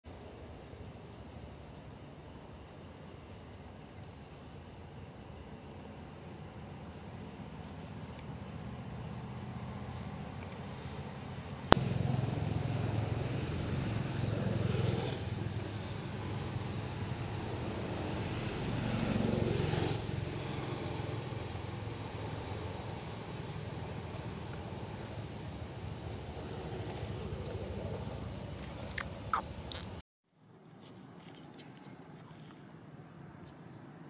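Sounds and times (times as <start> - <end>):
traffic engine hum: 6.6 - 34.0.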